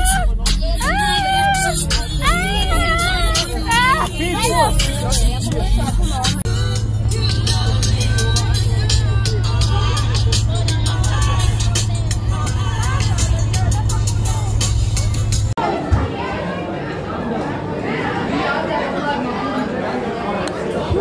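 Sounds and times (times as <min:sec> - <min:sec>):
bus engine drone: 0:00.0 - 0:15.6
music playing: 0:00.0 - 0:15.6
crowd of people talking: 0:00.0 - 0:21.0.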